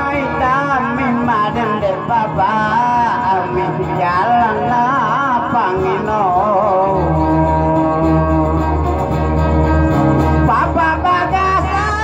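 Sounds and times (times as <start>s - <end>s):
man singing: 0.0s - 9.4s, 10.3s - 12.0s
guitar music: 0.0s - 12.0s.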